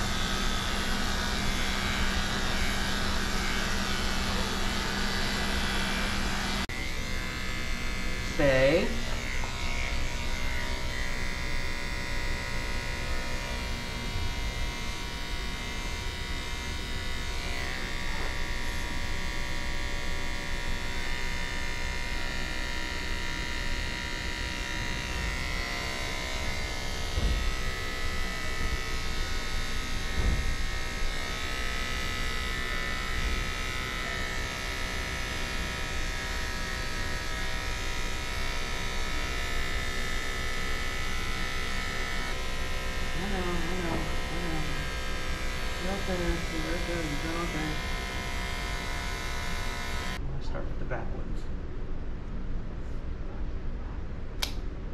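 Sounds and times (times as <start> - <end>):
electric clipper running: 0.0 - 50.2.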